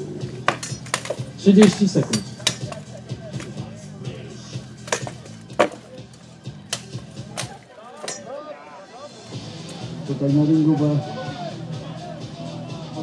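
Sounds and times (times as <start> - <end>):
swords clanking on armour: 0.4 - 2.8, 4.8 - 5.9, 6.7 - 8.3.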